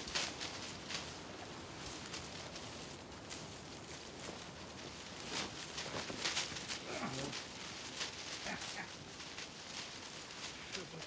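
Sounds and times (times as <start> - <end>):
footsteps in undergrowth: 0.0 - 11.0
leaves and branches rustling: 0.0 - 11.0.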